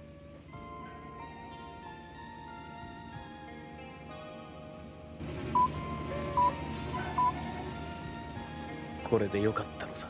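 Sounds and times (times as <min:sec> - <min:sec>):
background music of held tones: 0:00.0 - 0:10.0.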